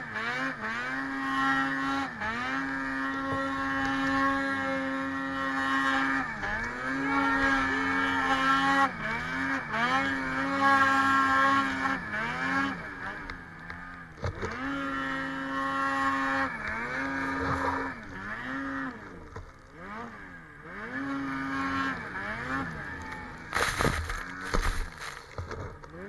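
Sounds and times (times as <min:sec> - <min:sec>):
snowmobile engine revving: 0:00.0 - 0:26.0.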